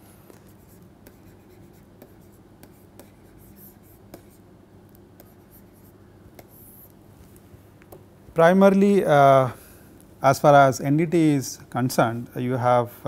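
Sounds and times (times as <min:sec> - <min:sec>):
steady low hum: 0:00.0 - 0:13.0
stylus scratching on tablet screen: 0:00.5 - 0:04.5, 0:05.2 - 0:06.9.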